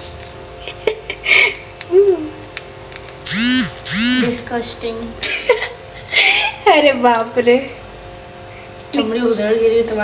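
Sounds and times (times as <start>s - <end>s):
woman humming: 1.9s - 2.4s.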